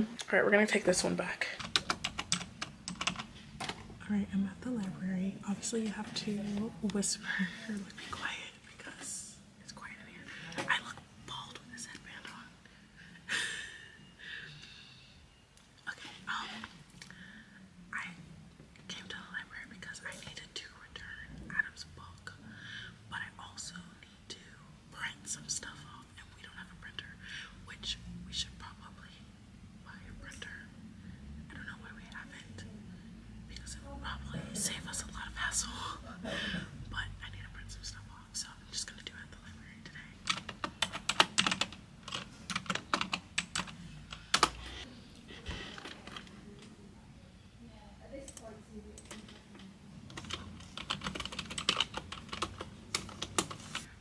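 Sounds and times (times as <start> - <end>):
computer keyboard typing: 1.6 - 3.8, 40.2 - 44.8, 50.1 - 53.9
woman whispering: 4.0 - 12.6, 15.8 - 16.9, 17.6 - 30.9, 31.5 - 40.4.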